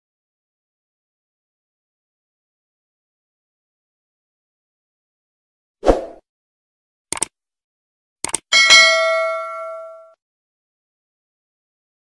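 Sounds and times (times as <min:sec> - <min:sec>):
mouse clicks: 0:07.1 - 0:07.3, 0:08.2 - 0:08.4
bell ding: 0:08.5 - 0:10.2.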